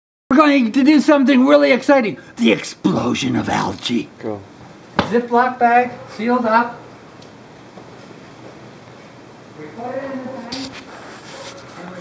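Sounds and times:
low steady background noise: 0:00.3 - 0:12.0
person's voice utterance: 0:02.4 - 0:04.1
brief sharp noise: 0:10.5 - 0:10.9.

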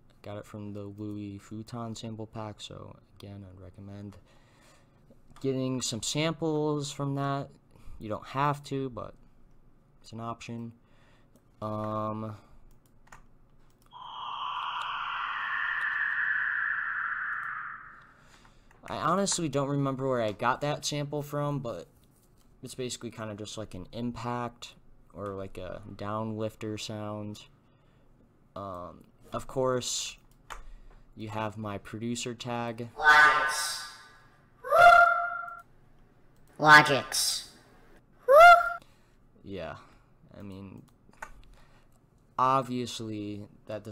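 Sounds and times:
downward sliding filtered noise: 0:14.0 - 0:18.2.

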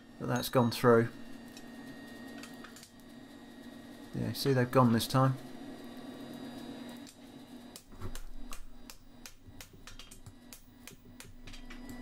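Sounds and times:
metallic clicks and taps: 0:07.0 - 0:12.0.

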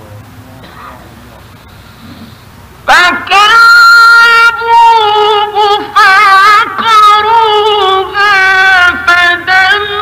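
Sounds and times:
high voice chanting: 0:02.8 - 0:10.0.

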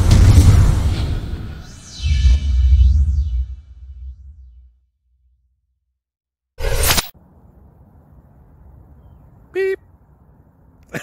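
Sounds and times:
whoosh sound effect: 0:00.0 - 0:04.7.

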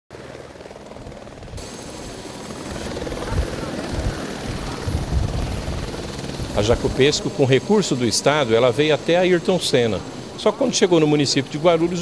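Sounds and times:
faint voices: 0:02.8 - 0:12.0.

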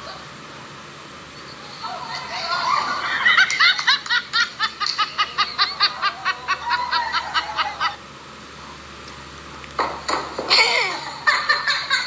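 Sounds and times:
person laughing: 0:02.3 - 0:08.0, 0:10.5 - 0:12.0.

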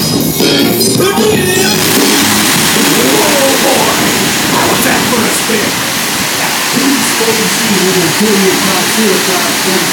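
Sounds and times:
voices: 0:01.0 - 0:09.9
air rushing over microphone: 0:01.1 - 0:09.9.

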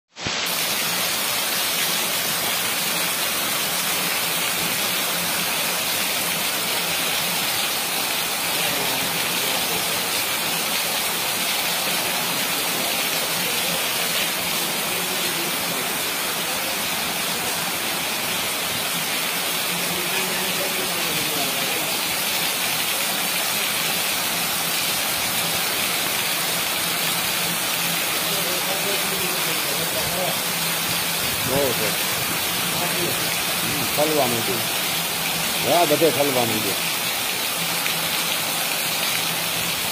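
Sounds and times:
heavy rain: 0:00.1 - 0:39.9.

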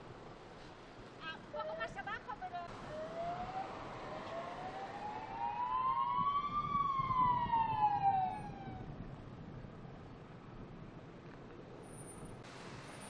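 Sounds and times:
vehicle road noise: 0:00.0 - 0:13.0
siren wailing: 0:02.7 - 0:08.9.

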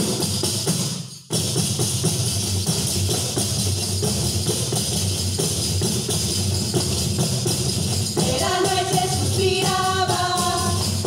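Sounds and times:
frame drums with jingles: 0:00.0 - 0:11.0.

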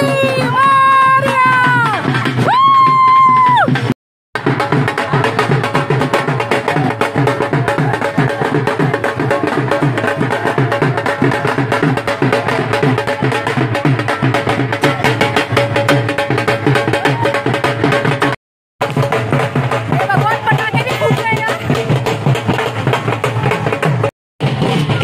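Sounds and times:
drums beaten with sticks: 0:00.0 - 0:25.0.

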